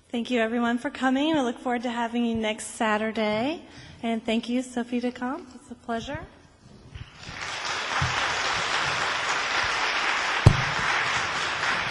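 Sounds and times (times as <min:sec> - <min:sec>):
audience applauding: 0:07.0 - 0:11.9
loud thump: 0:10.4 - 0:11.3.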